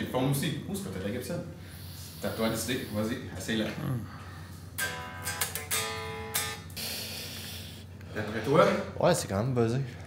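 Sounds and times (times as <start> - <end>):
electric guitar chords strummed: 4.8 - 6.7.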